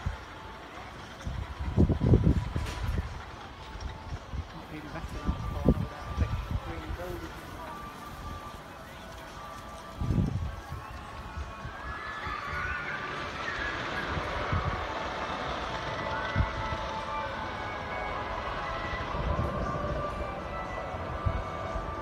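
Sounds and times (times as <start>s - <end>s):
faint distant voices: 0.0s - 22.0s
wind gusting on microphone: 0.0s - 22.0s.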